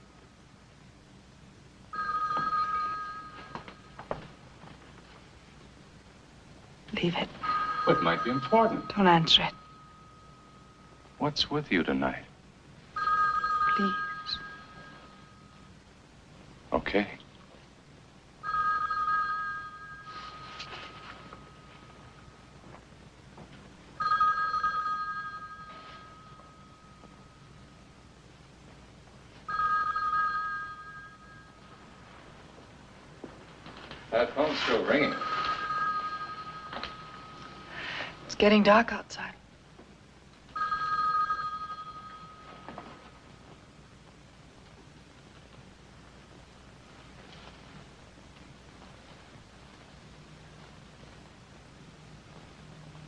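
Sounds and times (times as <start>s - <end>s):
telephone ringing: 1.9s - 4.2s, 7.3s - 11.0s, 12.9s - 15.7s, 18.4s - 22.3s, 24.0s - 27.9s, 29.4s - 32.5s, 34.6s - 37.8s, 40.5s - 43.6s.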